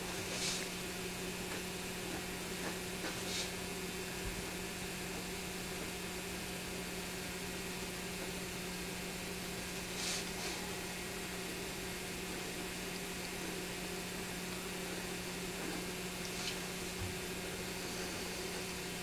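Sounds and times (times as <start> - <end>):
recording hum and hiss: 0.0 - 19.0.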